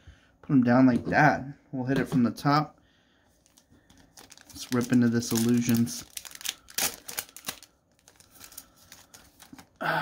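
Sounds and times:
foil wrapper tearing and crinkling: 0:03.5 - 0:09.8.

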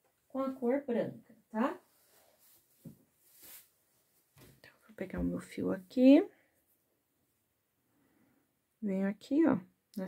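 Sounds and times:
yarn rustling in hands: 0:01.5 - 0:04.7.

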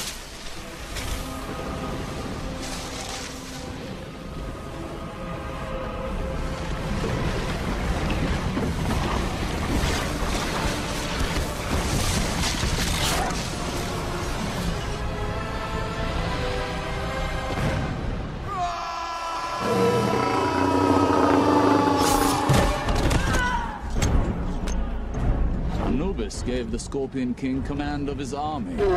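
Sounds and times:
rushing wind-like roar: 0:19.3 - 0:22.9.

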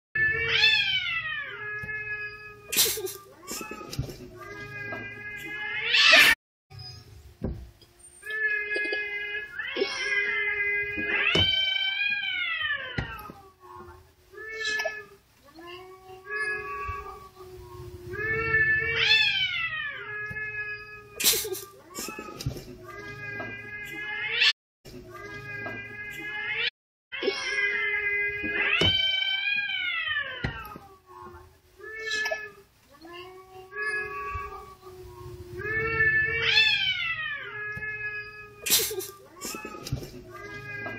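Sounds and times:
cats yowling: 0:00.2 - 0:06.4, 0:08.2 - 0:21.5, 0:25.2 - 0:40.9.

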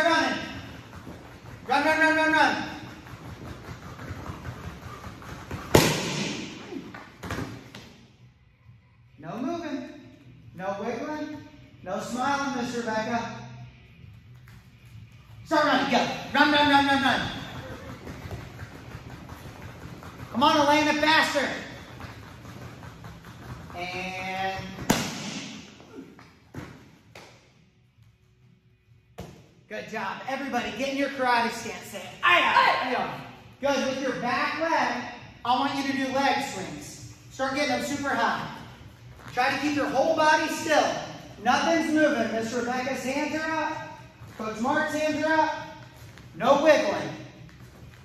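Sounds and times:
kick paddles slapped together: 0:05.4 - 0:08.0, 0:24.8 - 0:25.7.

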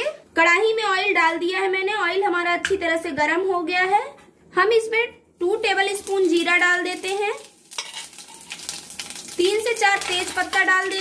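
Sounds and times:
seeds sizzling in hot oil: 0:05.5 - 0:11.0.

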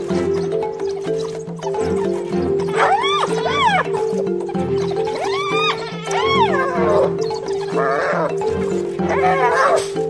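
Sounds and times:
background music with held notes: 0:00.0 - 0:10.0
hyena squealing cry: 0:00.0 - 0:10.0.

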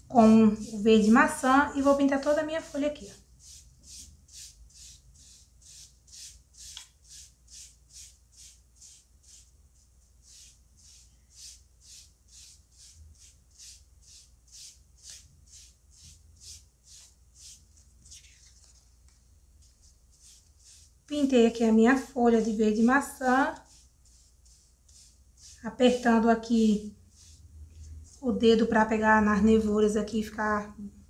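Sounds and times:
sponge dabbing paint on foam: 0:00.0 - 0:29.7.

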